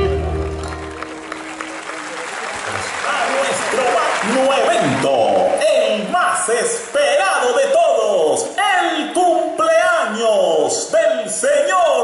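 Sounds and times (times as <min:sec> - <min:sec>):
live band closing chord: 0:00.0 - 0:01.7
audience applauding: 0:00.0 - 0:07.2.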